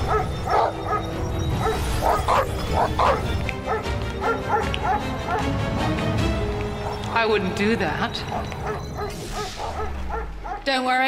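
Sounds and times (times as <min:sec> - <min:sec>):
dogs barking and yapping: 0:00.0 - 0:10.8
background music: 0:00.0 - 0:11.0.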